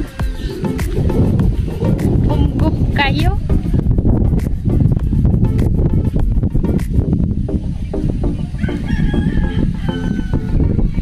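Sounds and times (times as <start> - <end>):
wind rumbling on microphone: 0.0 - 11.0
rooster crowing: 8.4 - 11.0.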